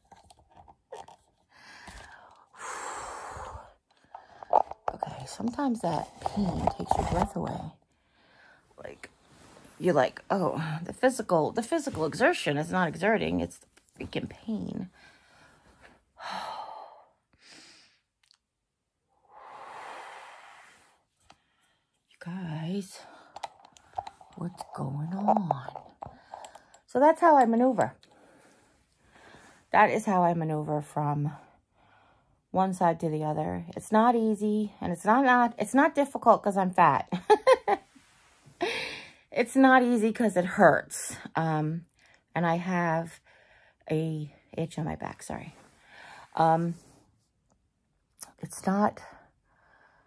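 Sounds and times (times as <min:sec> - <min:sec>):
woman breathing: 0:01.5 - 0:04.8, 0:07.8 - 0:09.7, 0:14.9 - 0:18.1, 0:19.1 - 0:22.0, 0:25.8 - 0:26.9, 0:28.0 - 0:29.7, 0:31.6 - 0:32.5, 0:38.5 - 0:39.3, 0:45.7 - 0:46.4, 0:49.2 - 0:50.0
woman breathing heavily and sighing: 0:01.5 - 0:04.8, 0:14.9 - 0:18.1, 0:38.5 - 0:39.3.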